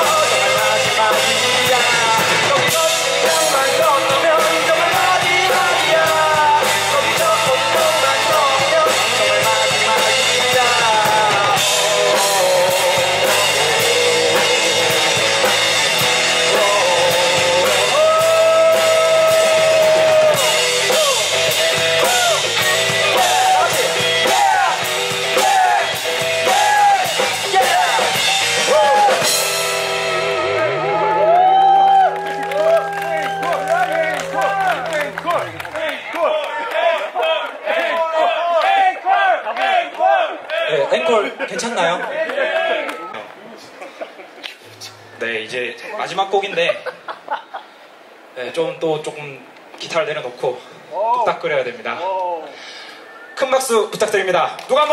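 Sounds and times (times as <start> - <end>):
man singing lead: 0.0 - 30.9
electric bass: 0.0 - 35.7
drum kit: 0.0 - 35.8.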